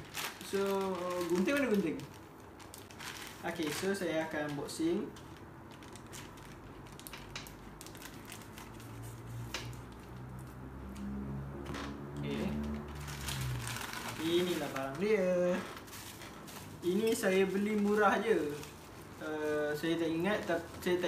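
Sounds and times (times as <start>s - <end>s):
plastic bag rustling: 0.0s - 10.6s, 11.7s - 21.0s.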